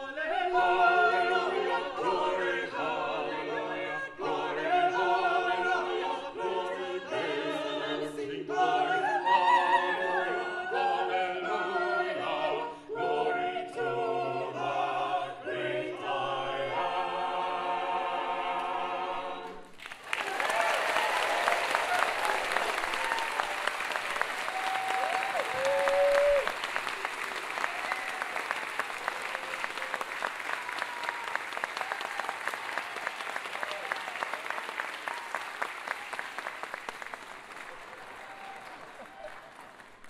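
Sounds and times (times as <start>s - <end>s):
a cappella group singing: 0.0s - 19.8s
audience applauding: 19.8s - 40.0s
cheers and whoops: 20.1s - 36.3s, 38.0s - 39.5s.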